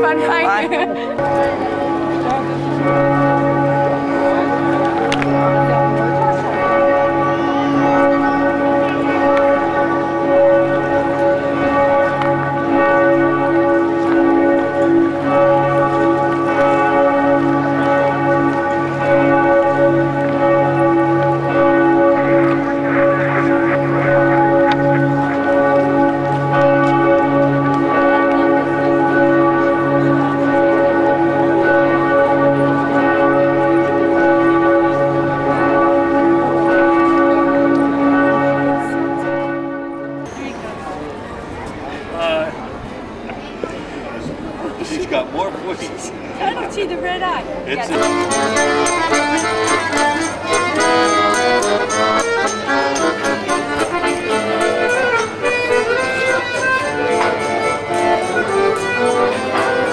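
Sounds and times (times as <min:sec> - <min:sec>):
church bells pealing: 0:00.0 - 0:41.6, 0:45.0 - 0:59.9.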